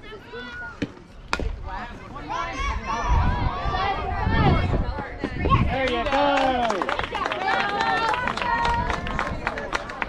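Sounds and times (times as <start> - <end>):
crowd shouting and cheering: 2.1 - 10.0.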